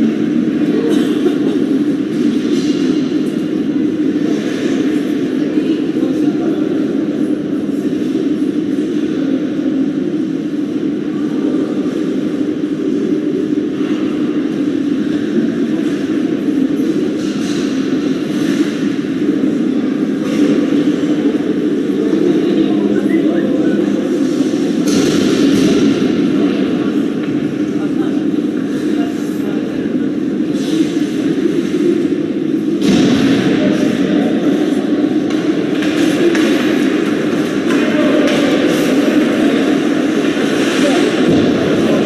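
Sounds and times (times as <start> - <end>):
indistinct voices: 0.0 - 42.0.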